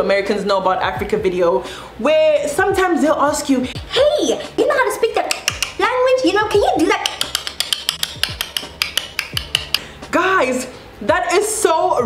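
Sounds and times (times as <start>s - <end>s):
beat with deep kick drums: 2.7s - 4.6s, 6.4s - 10.2s.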